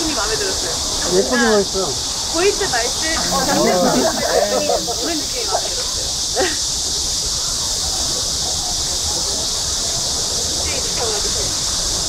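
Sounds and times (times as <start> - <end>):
cicadas buzzing: 0.0 - 12.0.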